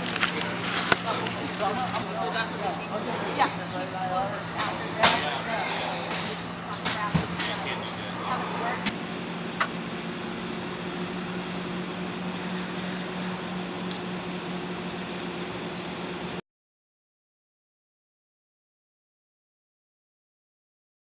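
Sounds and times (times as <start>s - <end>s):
faint voices: 0.0s - 8.9s
steady low hum: 0.0s - 16.4s.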